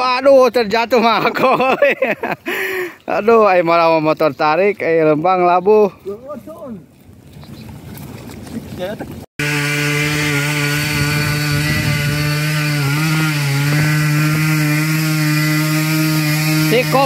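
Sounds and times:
motorcycle engine revving high: 9.4 - 17.0.

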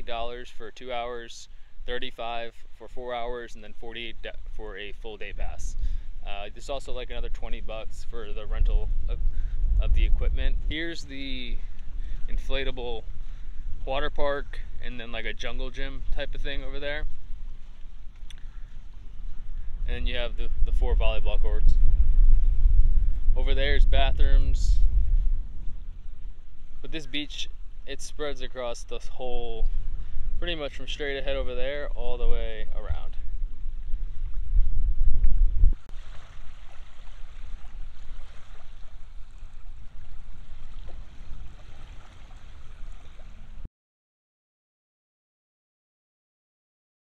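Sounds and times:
wind buffeting microphone: 3.1 - 43.7
small waves lapping on shore: 16.0 - 19.7, 35.8 - 43.7
faint tick: 18.1 - 18.4.

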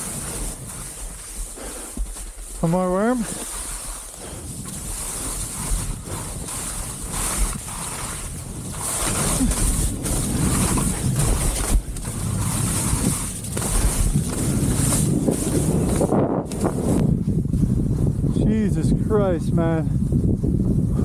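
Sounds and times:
skis hissing on slush: 0.0 - 15.9
wind buffeting microphone: 0.0 - 21.0.

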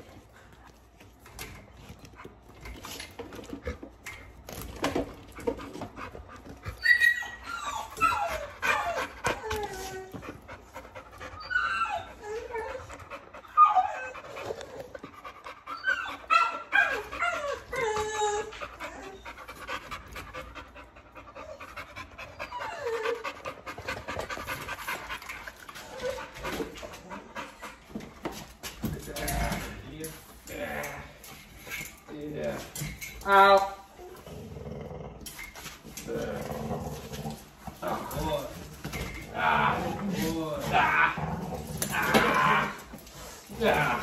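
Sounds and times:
dog whining excitedly: 4.9 - 19.8, 21.4 - 24.5, 25.6 - 27.7, 37.8 - 44.0.

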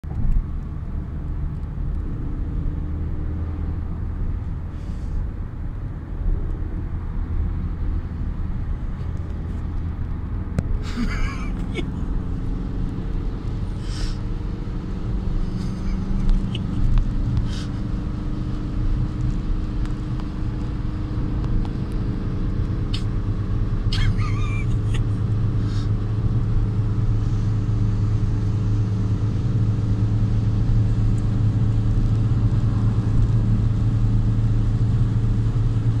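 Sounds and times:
tyre and road noise: 0.0 - 36.0.

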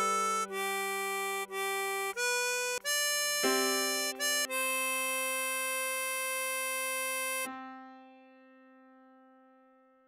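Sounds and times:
harmonica holding a note: 0.0 - 7.5.

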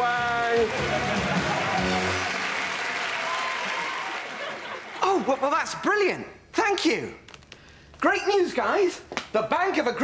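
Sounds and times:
studio audience applauding: 0.0 - 5.5.

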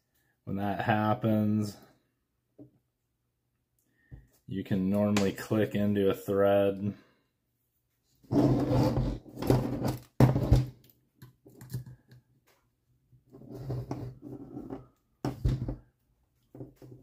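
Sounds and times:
rustling and scraping on workbench: 8.1 - 10.7, 13.3 - 15.8.

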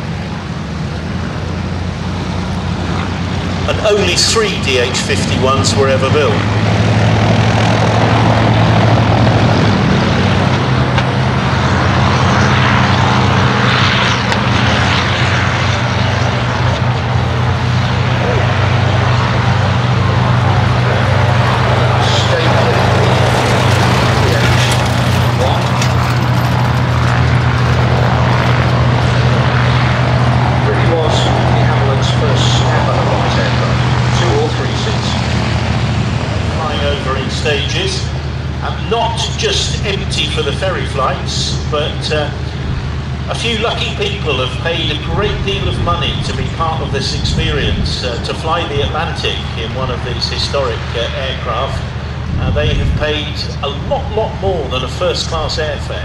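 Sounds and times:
piston aircraft engines droning: 0.0 - 56.0.

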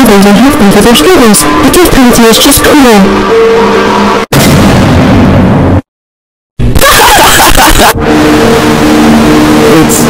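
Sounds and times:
distorted explosion sound effect: 4.3 - 5.9.

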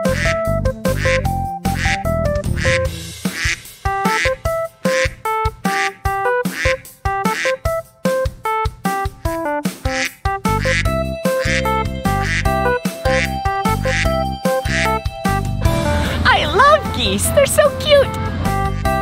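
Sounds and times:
deep bass line: 0.0 - 3.2, 10.5 - 19.0
keyboard notes: 0.0 - 19.0
steady beat: 0.0 - 19.0.

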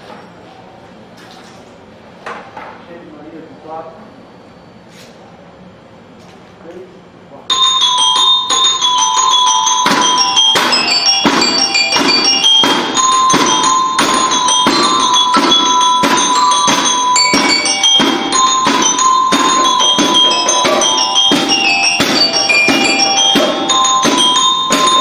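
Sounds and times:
bell lyre melody: 7.5 - 25.0
drum strokes: 7.5 - 25.0.

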